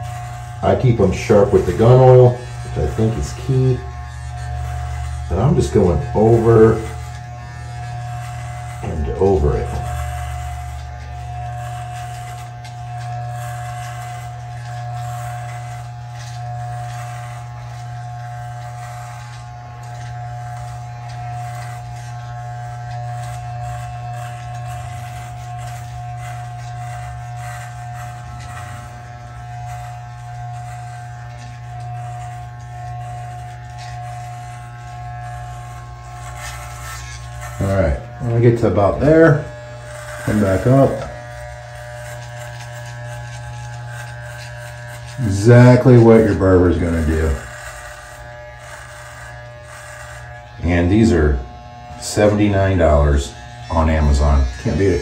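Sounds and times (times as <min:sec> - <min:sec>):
electric hair trimmer buzzing: 0:00.0 - 0:55.0.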